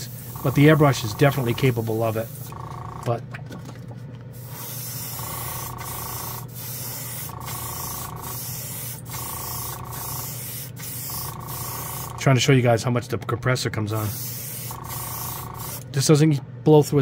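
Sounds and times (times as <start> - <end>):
airbrush spraying hiss: 0.0 - 2.6, 4.4 - 12.2, 14.0 - 15.8
steady low hum: 0.0 - 17.0.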